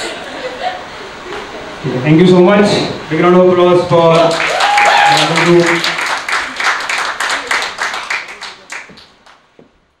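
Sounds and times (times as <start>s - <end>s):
small audience clapping: 4.1s - 9.6s.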